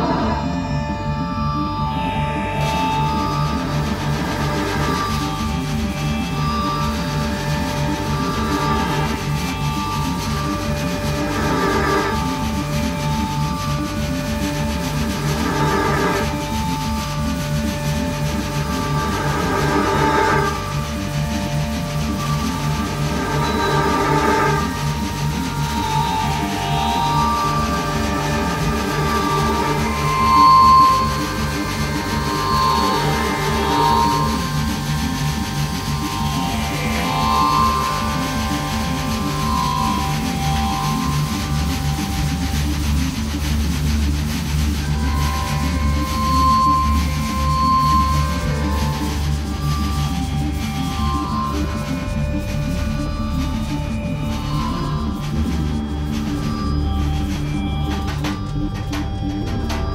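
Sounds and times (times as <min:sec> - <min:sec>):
fast-pulsing low drone: 0:00.0 - 0:59.9
layered sustained tones: 0:00.0 - 0:59.9.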